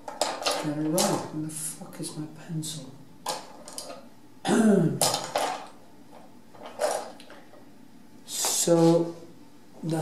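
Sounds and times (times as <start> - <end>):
man clearing his throat: 4.4 - 5.0.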